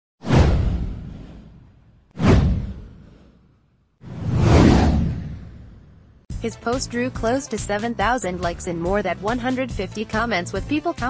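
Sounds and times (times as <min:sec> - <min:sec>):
cinematic whoosh: 0:00.2 - 0:06.3
deep low boom: 0:00.3 - 0:03.2, 0:04.1 - 0:06.2.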